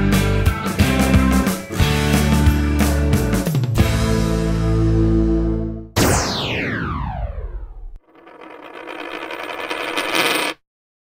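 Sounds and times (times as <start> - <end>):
falling electronic pitch sweep: 6.0 - 7.9.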